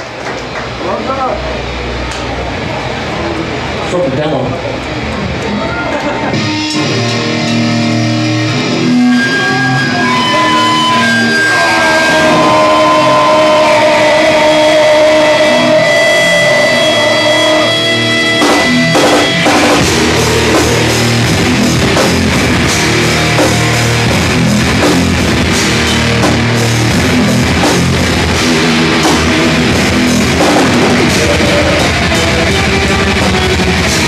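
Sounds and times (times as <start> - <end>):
bass guitar: 4.6 - 34.0
electric guitar ringing notes: 6.3 - 34.0
drum hits: 18.2 - 34.0.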